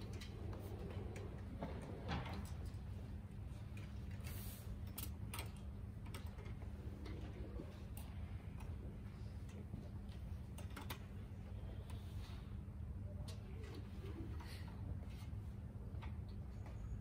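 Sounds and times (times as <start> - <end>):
faint hall hum: 0.0 - 17.0.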